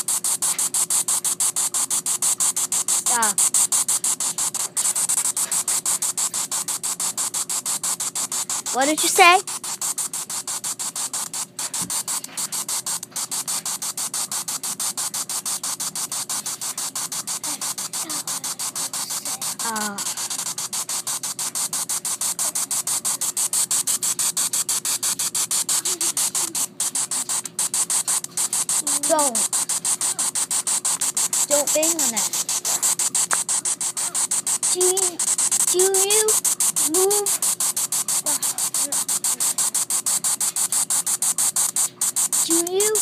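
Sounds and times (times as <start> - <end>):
pulsing radio static: 0.0 - 43.0
faint pitched snatches: 0.1 - 43.0.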